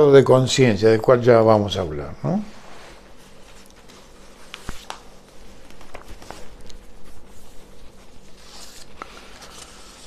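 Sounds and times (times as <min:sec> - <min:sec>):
paper sheets rustling: 0:02.8 - 0:10.0
page turning: 0:03.6 - 0:10.0.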